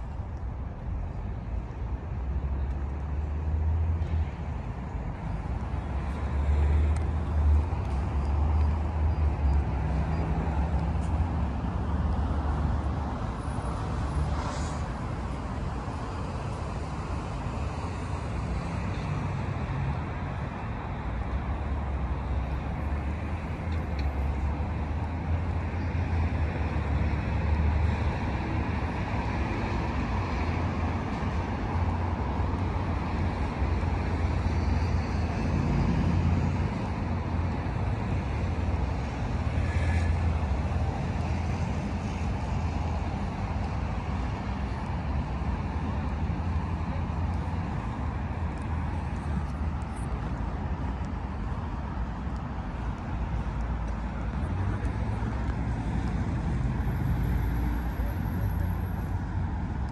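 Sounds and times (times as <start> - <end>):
cars passing on city road: 0.0 - 59.9.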